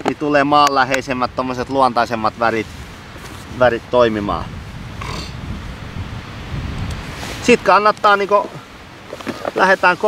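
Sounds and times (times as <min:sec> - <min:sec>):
wind buffeting microphone: 0:00.0 - 0:10.0
short rustle: 0:02.4 - 0:04.0, 0:06.9 - 0:10.0.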